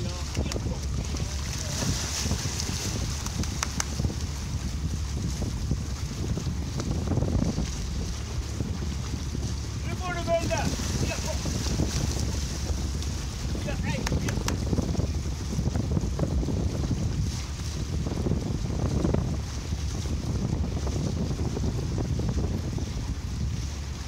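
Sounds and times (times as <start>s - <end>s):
boat engine idling: 0.0s - 24.0s
water lapping at hull: 0.0s - 24.0s
wind buffeting microphone: 0.0s - 24.0s.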